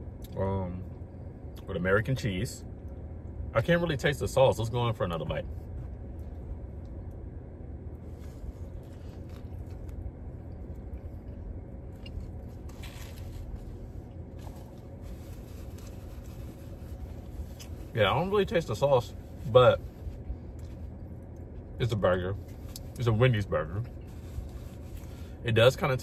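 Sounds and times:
man chewing food: 0:07.9 - 0:17.9.

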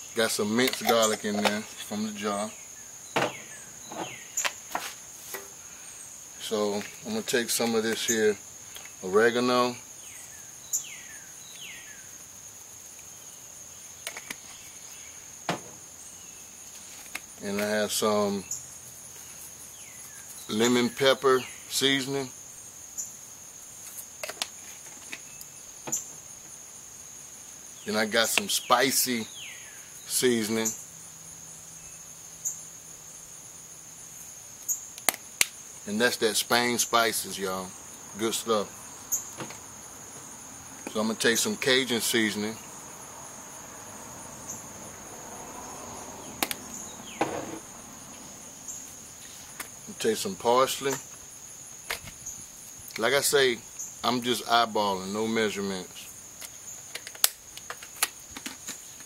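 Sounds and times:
insects chirring: 0:00.0 - 0:59.0.

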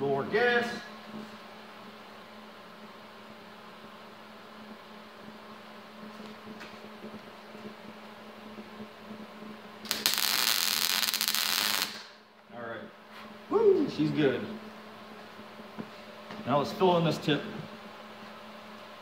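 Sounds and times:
steady low hum: 0:00.0 - 0:19.0
welder arc crackling: 0:02.8 - 0:12.3.

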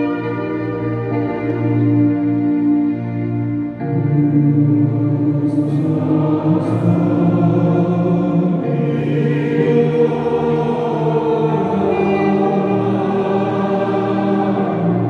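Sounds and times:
congregation singing a hymn: 0:00.0 - 0:02.5, 0:03.8 - 0:15.0.

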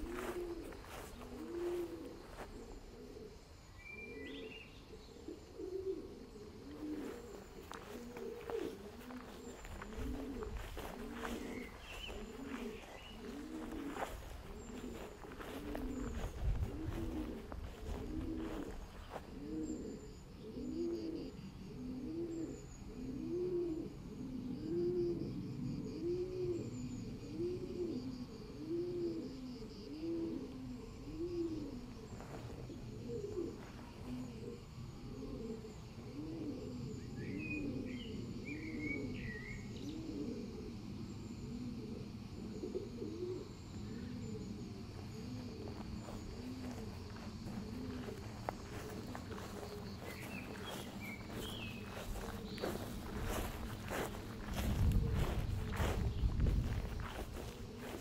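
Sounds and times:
dove cooing: 0:00.0 - 0:58.0
small bird chirping: 0:06.5 - 0:19.9, 0:45.7 - 0:57.5.

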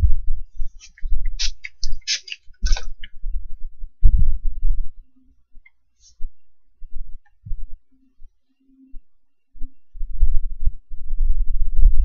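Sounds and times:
low rumbling with thumps: 0:00.0 - 0:02.0, 0:02.6 - 0:07.9, 0:08.9 - 0:12.0.

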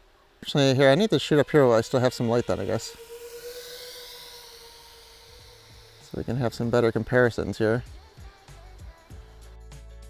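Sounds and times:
drone motors whining: 0:00.0 - 0:09.5.

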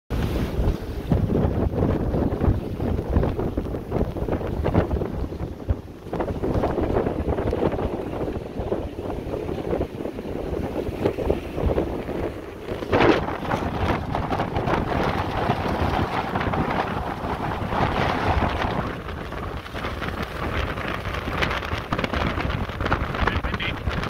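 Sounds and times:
gusty wind buffeting microphone: 0:00.1 - 0:24.0.

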